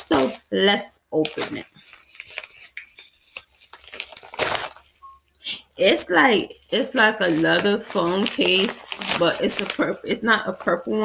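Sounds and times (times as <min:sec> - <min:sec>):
paper mailer tearing: 0:01.4 - 0:04.9, 0:06.6 - 0:11.0.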